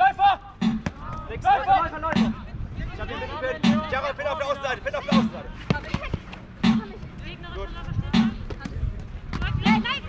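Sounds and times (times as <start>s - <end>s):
drum beat: 0.6s - 1.3s, 2.0s - 2.5s, 3.6s - 4.0s, 5.0s - 7.1s, 8.0s - 8.7s.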